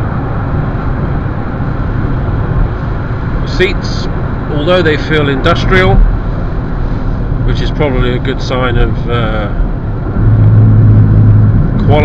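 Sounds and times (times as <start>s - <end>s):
car engine drone: 0.0s - 12.0s
road noise inside car: 0.0s - 12.0s.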